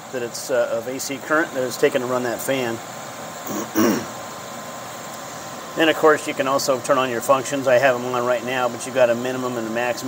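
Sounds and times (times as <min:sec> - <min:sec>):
electric fan air rush: 0:00.0 - 0:10.0
person clearing throat: 0:03.5 - 0:04.2.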